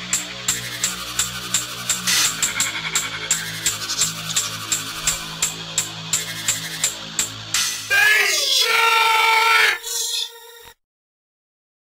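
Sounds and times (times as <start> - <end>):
hiss: 0.8 - 2.5.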